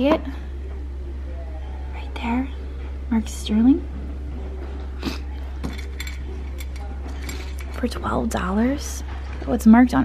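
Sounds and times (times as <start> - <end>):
faint background voices: 0.0 - 9.6
steady low hum: 0.0 - 10.0
glass and metal clinking: 5.4 - 8.0.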